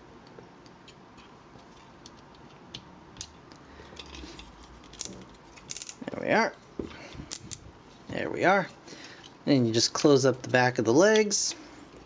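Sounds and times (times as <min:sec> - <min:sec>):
plastic toy parts clicking: 0:02.0 - 0:06.0.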